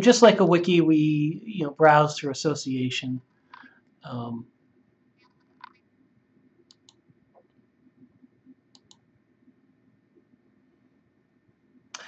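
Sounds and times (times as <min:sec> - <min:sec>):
computer mouse clicking: 0:06.6 - 0:07.6, 0:08.7 - 0:09.0.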